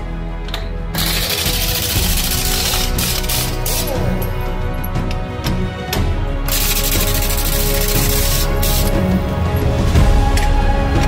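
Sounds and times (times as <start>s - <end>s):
background music: 0.0s - 11.0s
pneumatic impact wrench hammering: 1.0s - 4.0s, 6.5s - 9.0s.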